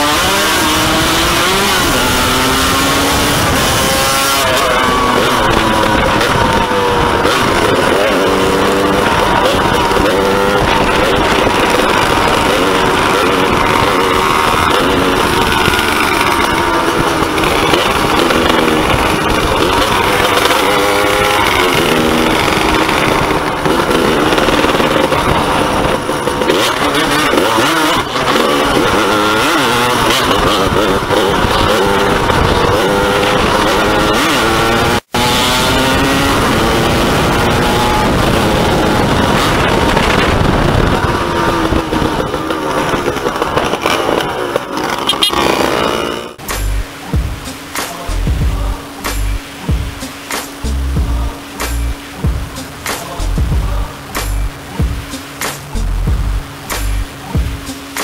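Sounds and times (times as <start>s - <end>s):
two-stroke engine revving: 0.0s - 58.0s
wind and road noise: 0.0s - 58.0s.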